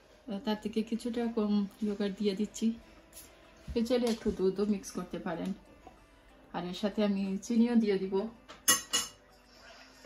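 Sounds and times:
kitchen utensils clinking: 8.6 - 9.3.

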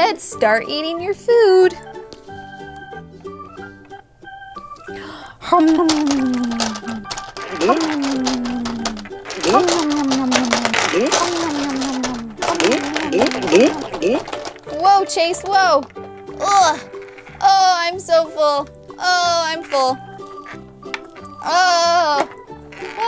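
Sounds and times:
background music: 0.0 - 23.0
gumballs clattering: 4.8 - 23.0.

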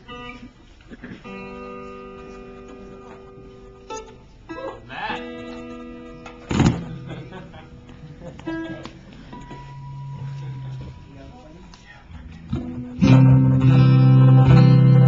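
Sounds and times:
plucked guitar strings ringing: 1.2 - 11.2, 12.5 - 15.0
sharp loud knock: 6.5 - 6.9.

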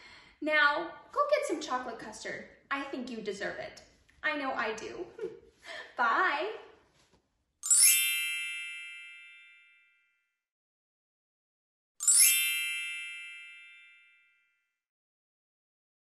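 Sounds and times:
shimmering magic sparkle chime: 7.6 - 10.0, 12.0 - 14.4.

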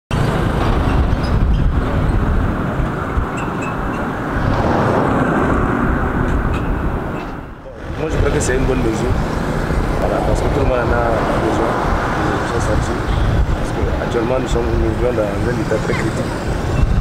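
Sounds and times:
road traffic rumble: 0.1 - 17.0.

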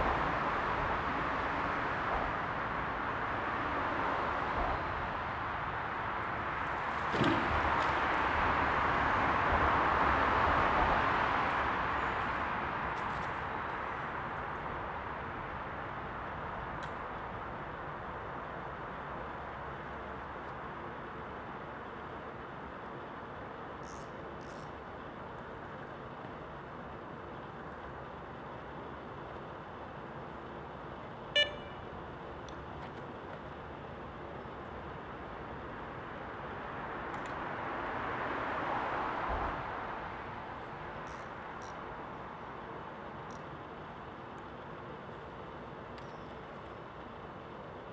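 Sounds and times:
motorway traffic hum: 0.0 - 47.9.

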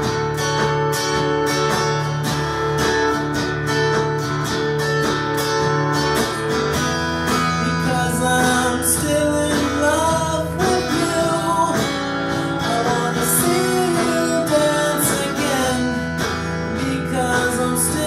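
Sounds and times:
acoustic guitar strumming chords: 0.0 - 18.0
man singing: 7.4 - 18.0.

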